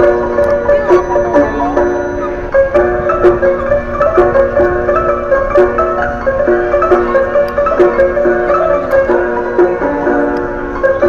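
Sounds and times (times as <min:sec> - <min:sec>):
barrel piano playing a tune: 0:00.0 - 0:11.0.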